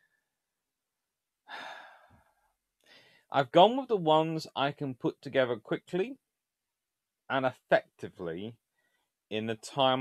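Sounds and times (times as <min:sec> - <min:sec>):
man taking a short breath: 0:01.5 - 0:03.3.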